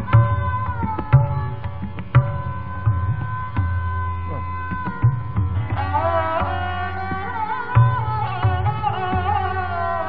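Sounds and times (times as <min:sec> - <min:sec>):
deep tabla bass strokes: 0:00.0 - 0:10.0
sarangi bowed melody: 0:00.0 - 0:10.0.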